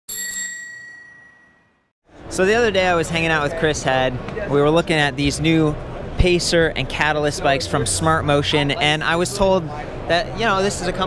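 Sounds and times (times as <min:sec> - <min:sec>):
bicycle bell ding: 0:00.1 - 0:01.9.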